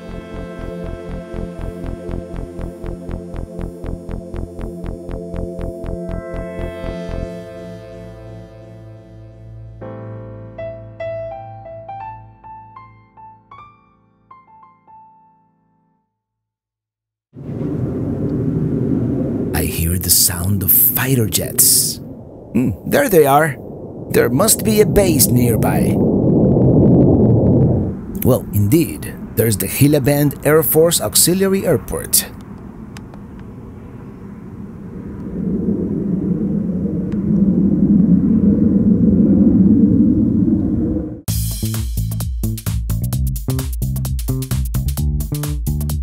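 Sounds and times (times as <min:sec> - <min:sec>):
jet aircraft rumble: 0:17.4 - 0:41.3.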